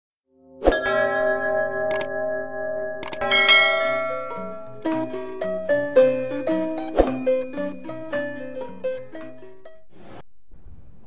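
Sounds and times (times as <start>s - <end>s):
bell ringing: 0.8s - 5.2s
mouse click sound effect: 3.0s - 3.2s
bright chime: 3.1s - 4.8s.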